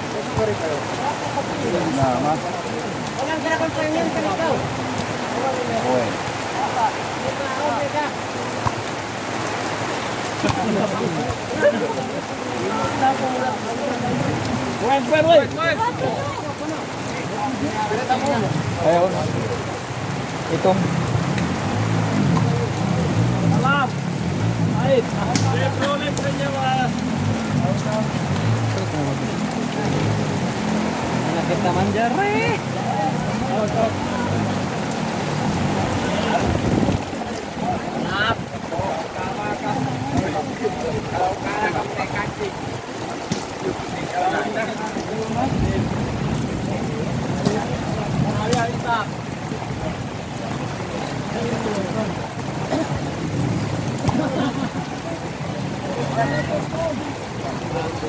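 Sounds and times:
steady rain hissing: 0:00.0 - 0:58.0.

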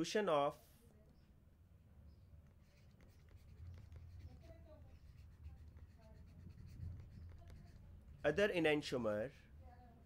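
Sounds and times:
stylus scratching on surface: 0:02.4 - 0:08.6.

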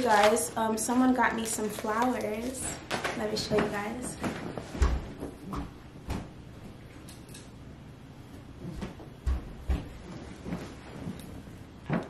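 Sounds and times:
soft rustling and handling: 0:08.3 - 0:12.0.

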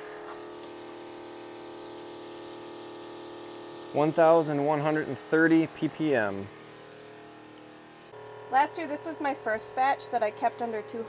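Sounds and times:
electric pump humming: 0:00.0 - 0:11.0.

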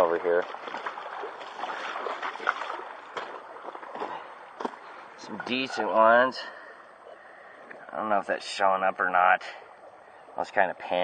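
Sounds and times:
creek water running: 0:00.0 - 0:11.0.

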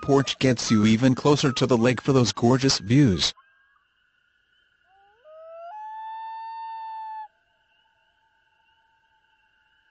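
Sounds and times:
loon wailing: 0:05.3 - 0:07.3.

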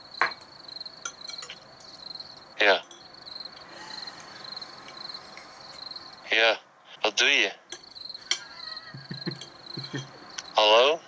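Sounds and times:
cricket trilling: 0:00.0 - 0:11.0
cutlery clicking on a plate: 0:00.2 - 0:02.0, 0:07.7 - 0:10.2.

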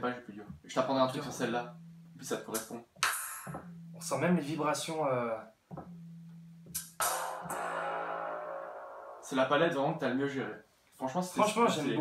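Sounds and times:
plucked string sample: 0:01.4 - 0:02.8, 0:03.4 - 0:04.5, 0:05.7 - 0:09.5
low held synth note: 0:01.6 - 0:02.3, 0:03.5 - 0:04.2, 0:05.8 - 0:09.5.

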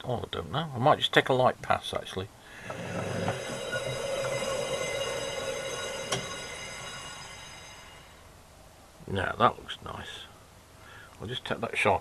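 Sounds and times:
lathe high-pitched metallic squeal: 0:02.6 - 0:08.2.

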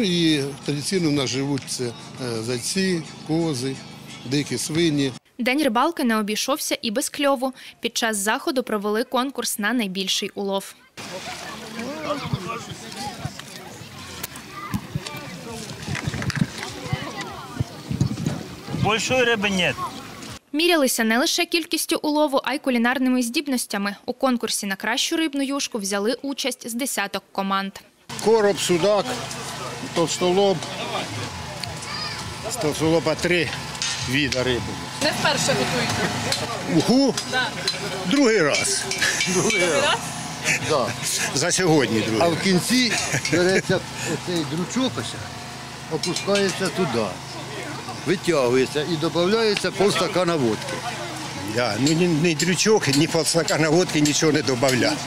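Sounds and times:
people talking: 0:00.0 - 0:16.0, 0:16.6 - 0:45.3, 0:45.9 - 0:55.0.

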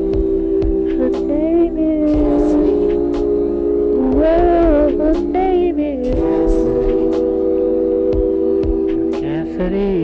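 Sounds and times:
sustained music chord: 0:00.0 - 0:10.0.

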